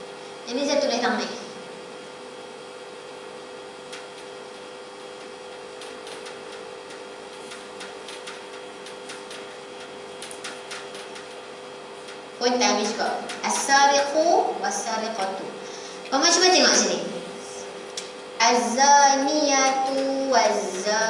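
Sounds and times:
steady electrical hum: 0.0 - 21.0.

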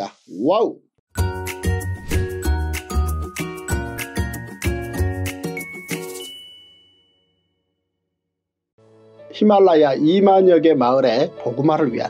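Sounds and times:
jingle closing chord: 1.2 - 7.5
high bell-like ding: 5.6 - 7.6.

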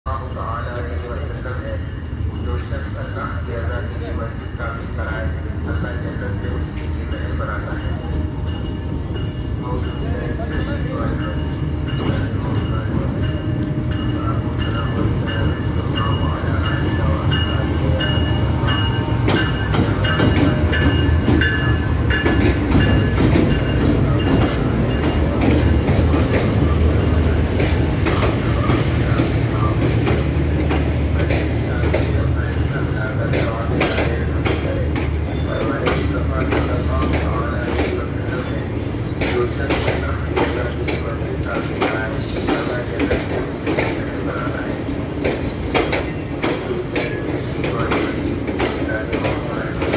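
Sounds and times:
diesel locomotive rumble: 0.1 - 49.9.

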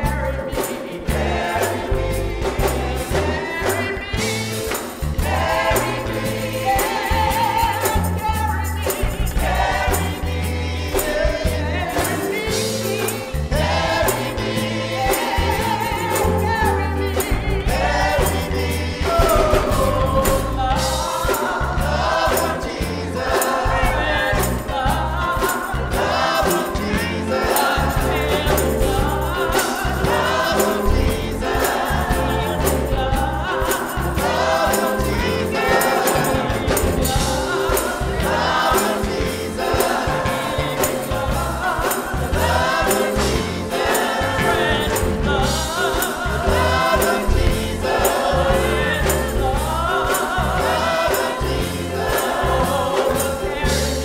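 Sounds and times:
gospel choir singing: 0.0 - 54.0
instrumental backing with beat: 0.0 - 54.0
lead singers singing: 0.0 - 54.0.

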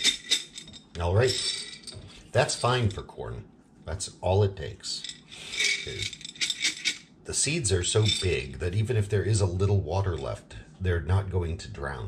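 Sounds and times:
kernels rattling in glass jar: 0.0 - 3.0, 5.0 - 7.1, 7.9 - 8.4.

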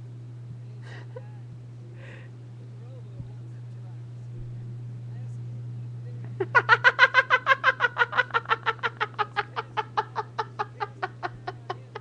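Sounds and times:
steady electrical hum: 0.0 - 12.0
woman laughing rapidly: 6.4 - 12.0.

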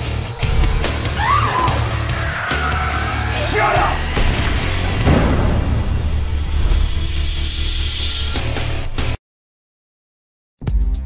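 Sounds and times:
dramatic trailer music: 0.0 - 9.2.

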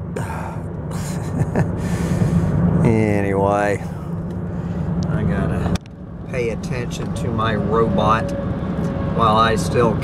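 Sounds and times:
car road and engine rumble: 0.0 - 10.0
man laughing breathily: 0.2 - 2.5.

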